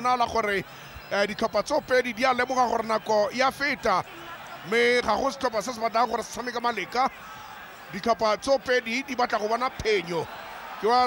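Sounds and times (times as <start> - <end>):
commentator speaking quickly: 0.0 - 11.0
stadium noise hiss: 0.0 - 11.0.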